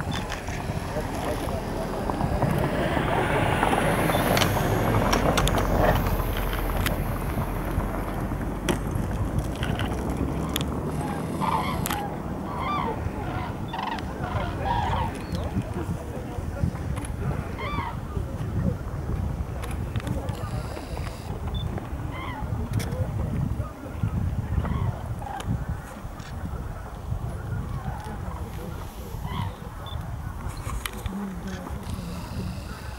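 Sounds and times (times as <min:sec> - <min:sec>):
constant low rumble: 0:00.0 - 0:32.9
cranes calling: 0:09.8 - 0:15.5, 0:27.6 - 0:32.9.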